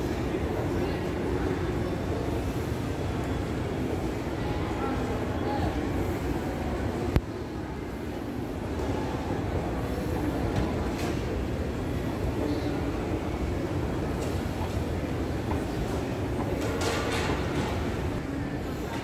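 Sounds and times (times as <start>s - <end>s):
murmur of voices: 0.0s - 19.0s.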